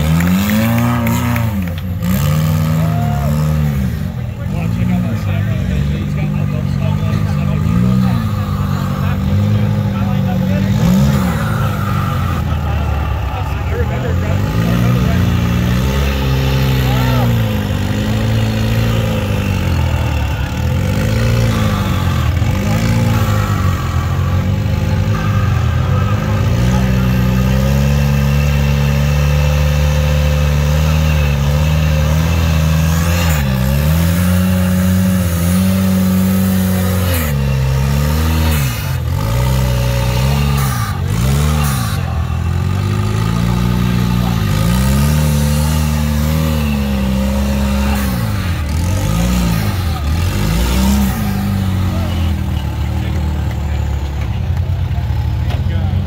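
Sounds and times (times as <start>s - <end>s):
engine revving under load: 0.0s - 56.0s.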